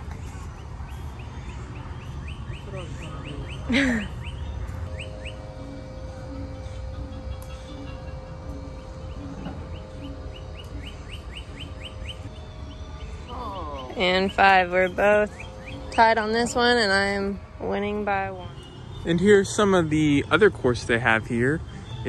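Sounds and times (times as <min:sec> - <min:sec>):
low steady rumble: 0:00.0 - 0:21.6
faint music: 0:00.0 - 0:22.0
small bird chirping: 0:06.6 - 0:16.2.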